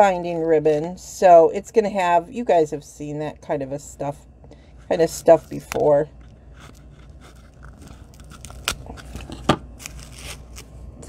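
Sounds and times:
ribbon tearing: 0:06.6 - 0:10.8.

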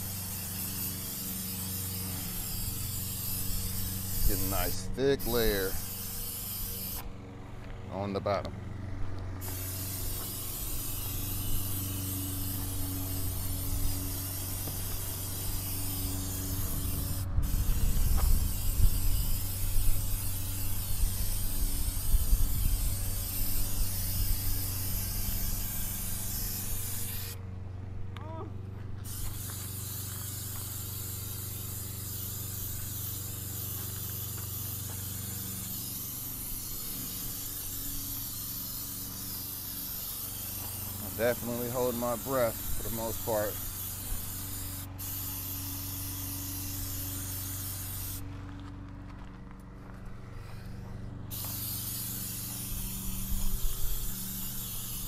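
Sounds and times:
spray paint can hissing: 0:00.0 - 0:07.1, 0:09.4 - 0:27.4, 0:29.0 - 0:48.2, 0:51.3 - 0:55.0
low hum: 0:43.5 - 0:55.0.

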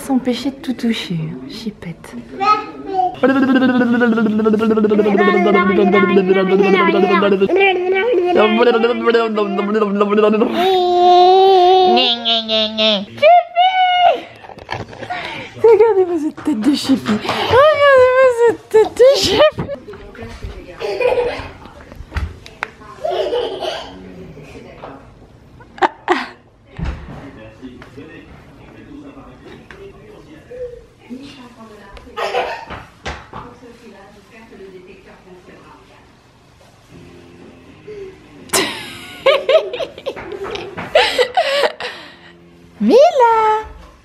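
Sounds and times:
person's voice bursts: 0:03.2 - 0:07.6
woman sing-song babbling: 0:03.2 - 0:10.8.

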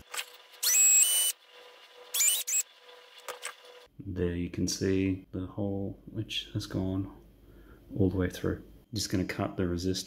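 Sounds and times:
cordless drill whining: 0:00.6 - 0:01.4, 0:02.1 - 0:02.6.

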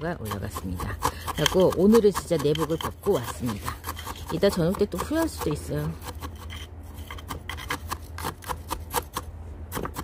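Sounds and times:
metal tool scraping through gravel: 0:00.2 - 0:09.2.

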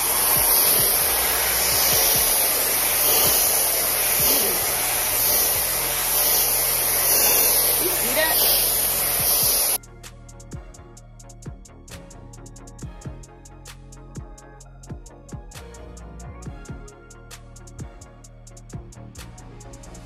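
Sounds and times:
hair dryer blowing: 0:00.0 - 0:09.8.

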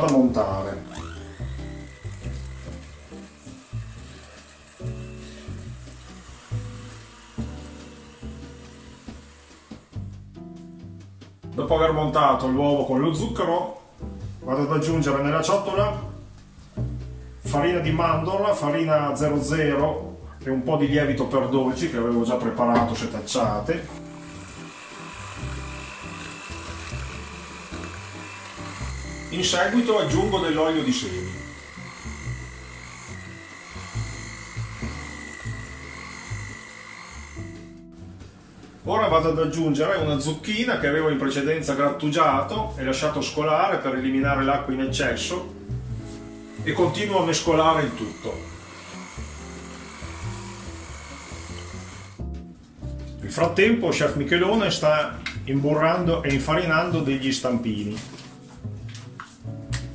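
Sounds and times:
electric hand mixer running: 0:00.0 - 0:10.3, 0:23.2 - 0:37.8, 0:46.0 - 0:52.2
background music: 0:00.0 - 0:59.9.

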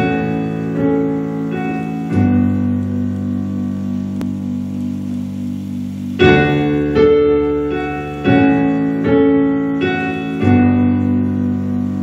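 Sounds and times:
piano low sustained chord: 0:00.0 - 0:12.0.

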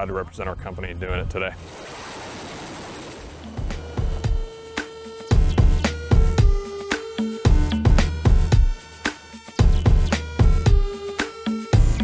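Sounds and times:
electronic music with heavy beats: 0:03.4 - 0:12.0.

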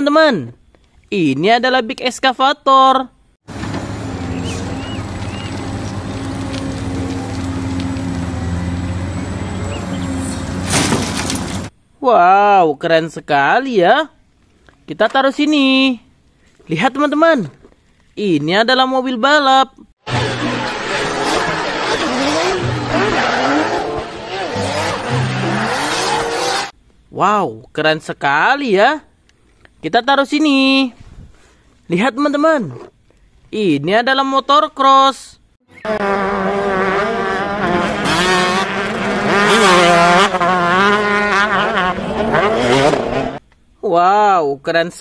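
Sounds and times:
crash of earth and rock: 0:03.5 - 0:08.4, 0:10.2 - 0:11.7
excavator diesel engine: 0:03.5 - 0:11.7, 0:20.0 - 0:26.7
tyres squealing on tarmac: 0:03.5 - 0:11.7, 0:20.1 - 0:26.7.

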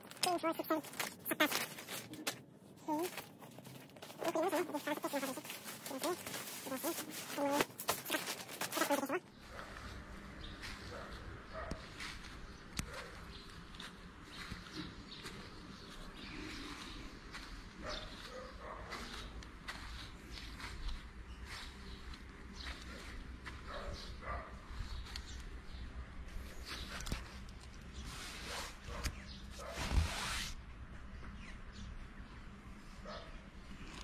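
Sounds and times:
footsteps on grass: 0:00.5 - 0:30.2.

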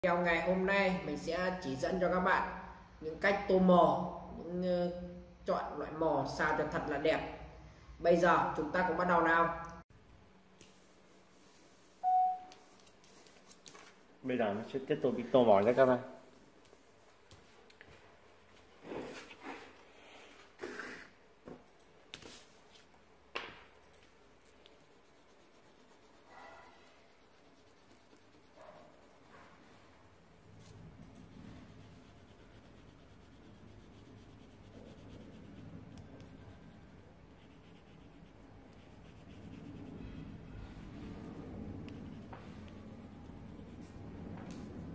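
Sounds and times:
pencil scratching on paper: 0:24.6 - 0:44.9.

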